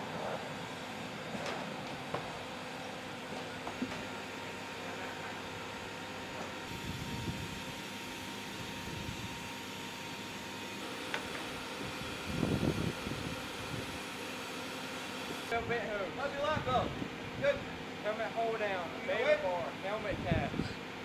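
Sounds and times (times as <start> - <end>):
ventilation fan hum: 0.0 - 21.0.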